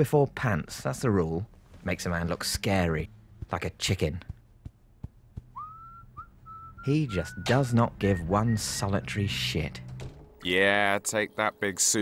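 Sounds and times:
person whistling: 5.5s - 8.8s.

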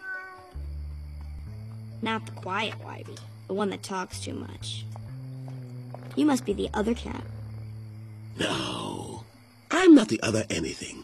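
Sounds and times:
cat meowing: 0.0s - 0.6s.

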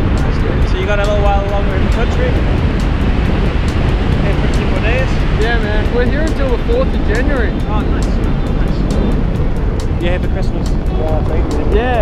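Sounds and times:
wind rushing over microphone: 0.0s - 12.0s
person speaking: 4.1s - 9.2s, 10.0s - 12.0s.

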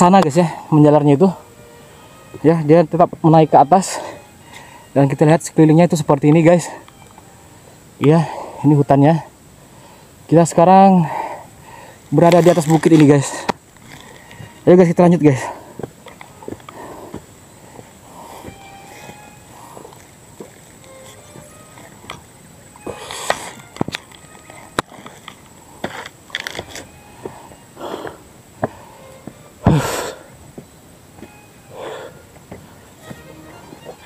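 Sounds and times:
footsteps on dirt trail: 0.0s - 9.4s, 10.3s - 34.0s
faint background music: 0.0s - 34.0s
person breathing: 4.0s - 5.0s, 7.6s - 8.7s, 9.6s - 10.3s, 11.0s - 12.1s, 13.3s - 14.6s, 15.4s - 20.1s, 22.8s - 23.6s, 27.2s - 30.4s, 31.7s - 33.0s
rustling: 12.0s - 30.2s.

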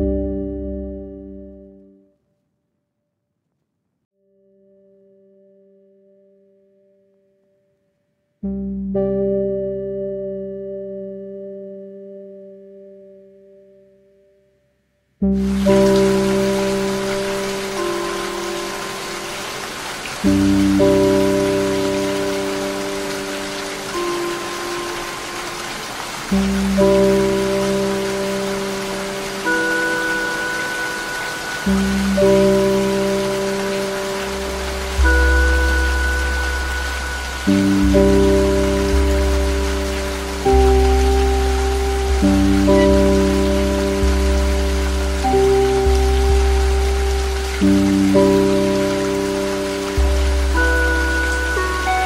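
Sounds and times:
slow ambient music: 0.0s - 2.2s, 4.2s - 14.5s, 15.1s - 52.0s
falling rain: 15.3s - 52.0s.

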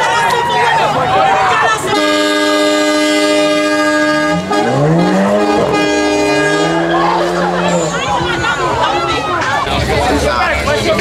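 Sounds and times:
crowd voices: 0.0s - 11.0s
car engine revving: 1.7s - 8.6s
car horn held steady: 1.9s - 7.9s.

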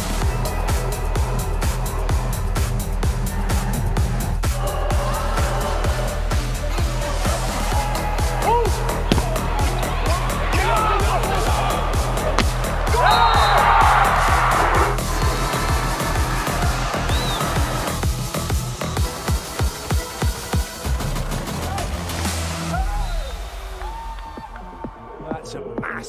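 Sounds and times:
crowd cheering: 0.4s - 18.0s, 19.9s - 25.3s.

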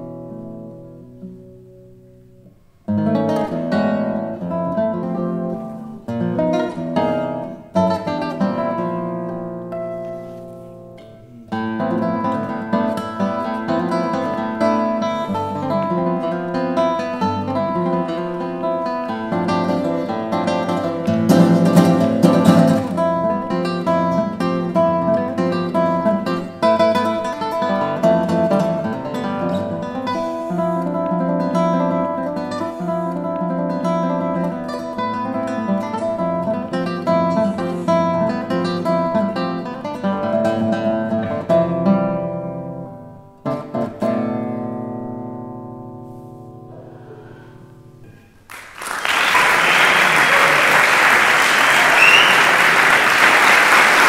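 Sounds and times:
classical guitar playing: 0.0s - 48.5s.

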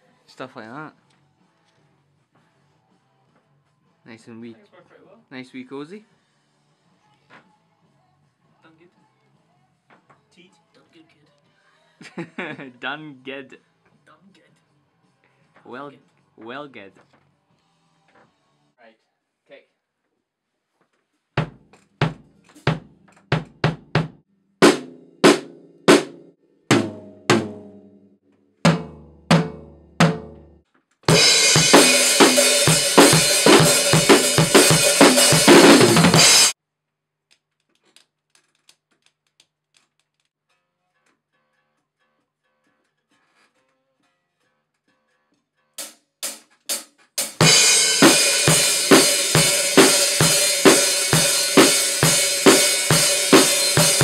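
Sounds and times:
full drum kit with crashing cymbals: 21.4s - 27.8s, 28.7s - 30.4s, 31.1s - 36.6s, 45.8s - 54.0s
rock drum beat with cymbals: 21.4s - 27.8s, 28.7s - 30.5s, 31.1s - 36.6s, 45.8s - 54.0s.

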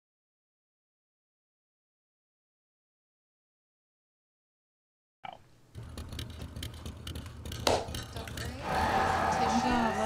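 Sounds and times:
voices: 8.1s - 10.0s.

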